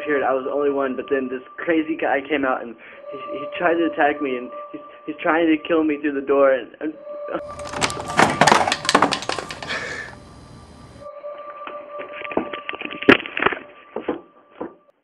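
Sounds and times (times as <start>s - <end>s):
door crashing and splintering: 7.5s - 9.8s
knocks and thumps: 7.6s - 9.8s, 12.4s - 14.8s.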